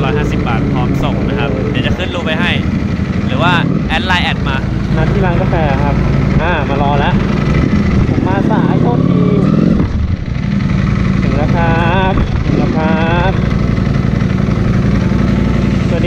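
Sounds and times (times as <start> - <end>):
voices talking: 0.0 - 9.7, 10.6 - 16.0
motorcycle engine idling: 0.0 - 16.0.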